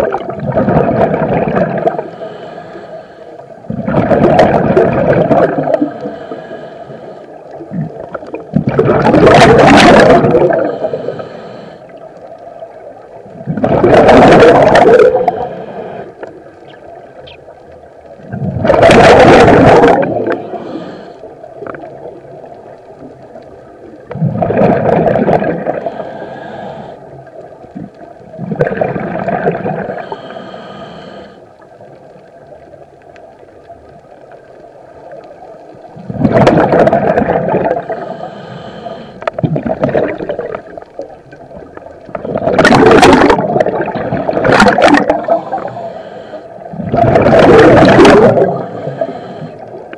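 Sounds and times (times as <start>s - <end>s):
diver exhaling bubbles underwater: 0.0s - 2.1s, 3.7s - 6.1s, 7.6s - 11.2s, 13.4s - 15.6s, 18.2s - 20.8s, 24.1s - 26.1s, 27.8s - 30.2s, 36.0s - 38.3s, 39.2s - 40.8s, 41.5s - 45.8s, 46.7s - 49.9s
faint steady hum: 0.0s - 49.9s.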